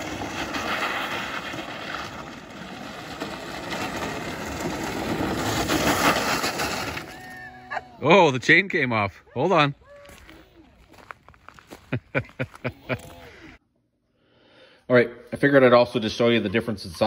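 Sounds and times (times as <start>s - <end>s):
tyres crunching over gravel: 0.0s - 7.7s, 9.6s - 13.5s.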